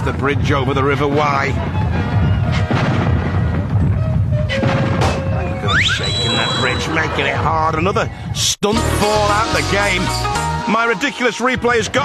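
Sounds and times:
low rumble: 0.0 - 8.4
background music: 0.0 - 12.0
cannon boom: 2.0 - 5.7.

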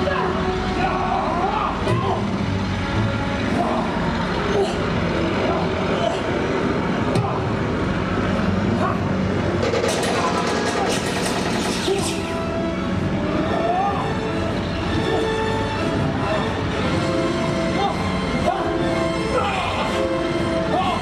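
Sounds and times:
voices shouting: 0.0 - 7.7, 10.0 - 21.0
engine drone: 0.0 - 21.0.

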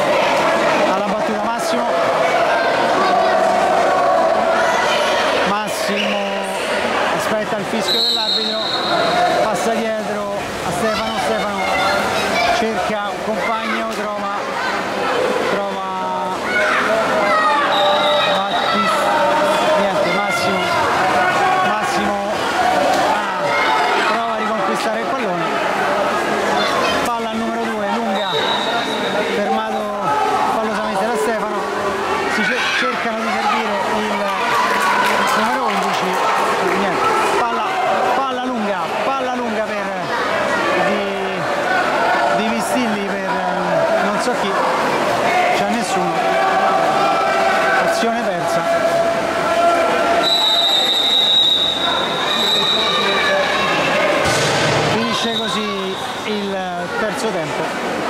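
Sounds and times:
shouts and chatter echoing: 0.0 - 58.0
referee's whistle: 7.8 - 9.2, 17.7 - 18.8, 28.1 - 29.2, 50.2 - 53.7, 55.1 - 56.3.

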